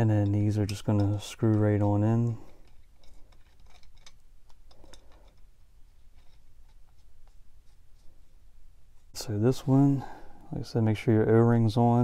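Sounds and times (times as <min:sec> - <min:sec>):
metal fitting clicks and scraping: 0:00.0 - 0:07.4.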